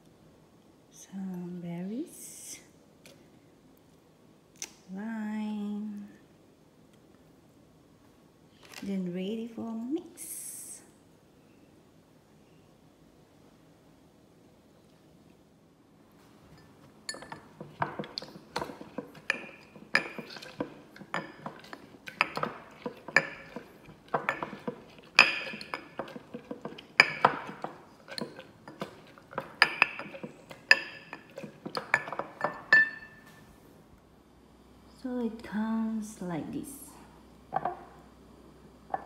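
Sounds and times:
muddler clinking against glass: 0:16.6 - 0:33.3.

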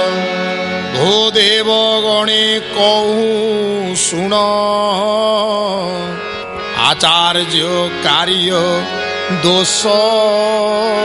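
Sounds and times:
men singing a devotional chant: 0:00.0 - 0:06.2, 0:06.8 - 0:11.0
harmonium: 0:00.0 - 0:11.0.

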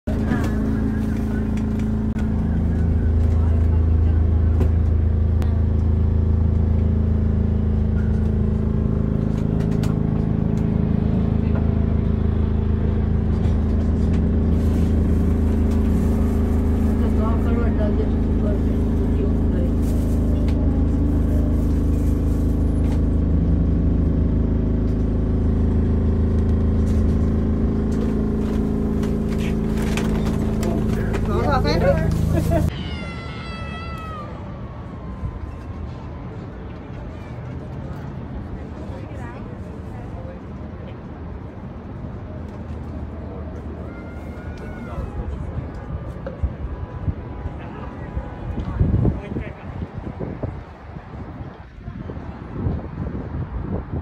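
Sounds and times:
passengers talking faintly: 0:00.1 - 0:06.4, 0:07.6 - 0:23.1, 0:29.2 - 0:33.1, 0:33.9 - 0:52.8
funicular car running on rails: 0:00.1 - 0:39.4.

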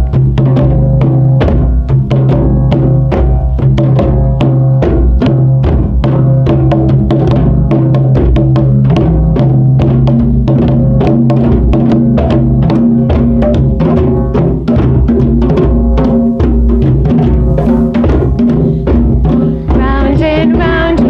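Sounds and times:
djembe drums rhythm: 0:00.0 - 0:21.0
low drum ring: 0:00.0 - 0:21.0.

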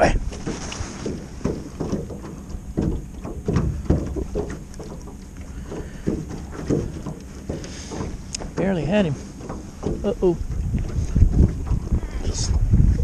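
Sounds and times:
waves slapping against a boat: 0:00.0 - 0:13.0.

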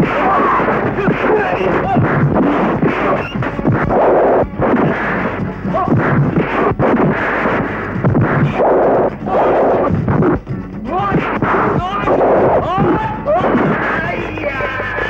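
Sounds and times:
punch sound effects: 0:00.0 - 0:10.4, 0:13.3 - 0:14.0
background music: 0:00.0 - 0:15.0.

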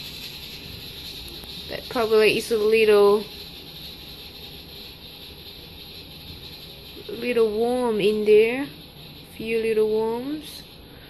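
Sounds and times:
low room tone hiss: 0:00.0 - 0:11.0.

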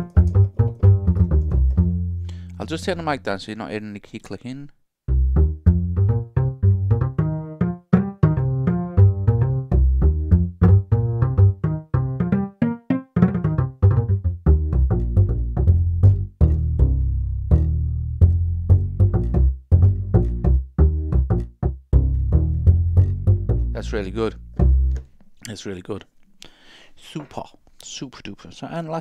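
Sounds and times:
plucked double bass notes: 0:00.0 - 0:03.3, 0:05.1 - 0:25.1.

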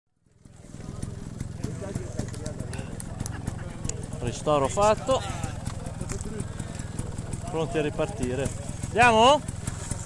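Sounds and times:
motorcycle engines idling: 0:00.2 - 0:10.0
voices chatting: 0:00.3 - 0:09.9.

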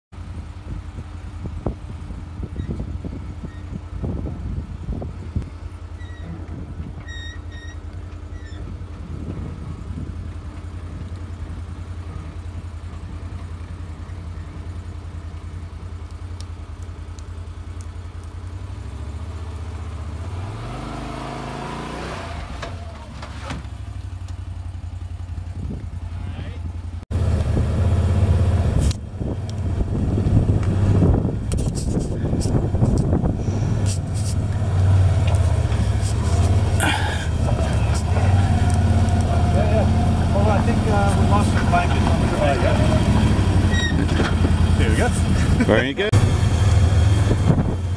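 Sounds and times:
vehicle engine running at low revs: 0:00.2 - 0:47.9.

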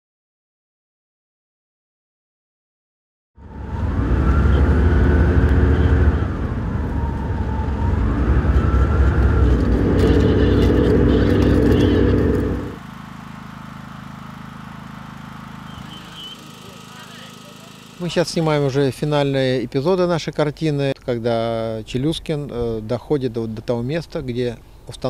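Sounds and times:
whine rising and falling: 0:03.4 - 0:19.0
vehicle engine running: 0:03.4 - 0:19.3.

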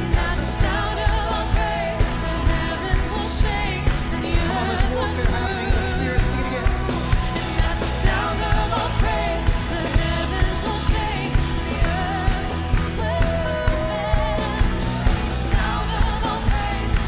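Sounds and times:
backing voices: 0:00.0 - 0:17.0
band playing drums bass and keys: 0:00.0 - 0:17.0
woman singing lead: 0:00.0 - 0:17.0.

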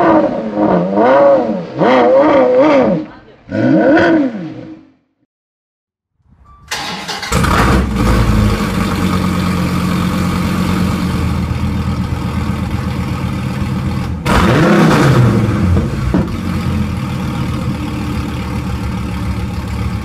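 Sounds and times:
car engine revving: 0:00.0 - 0:04.9, 0:06.8 - 0:20.0
car engine idling: 0:06.7 - 0:20.0.

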